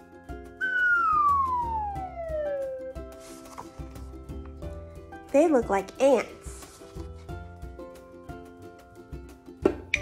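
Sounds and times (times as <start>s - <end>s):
background music with steady beat: 0.0s - 10.0s
whistle-like tone sliding down: 0.6s - 3.1s.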